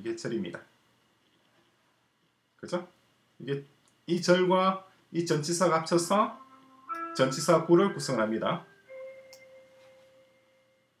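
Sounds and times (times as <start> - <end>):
ringing chime tone: 6.2 - 11.0.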